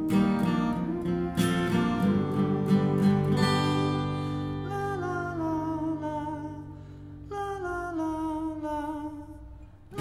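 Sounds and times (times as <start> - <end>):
acoustic guitar: 0.0 - 10.0
person singing wordlessly: 4.6 - 10.0.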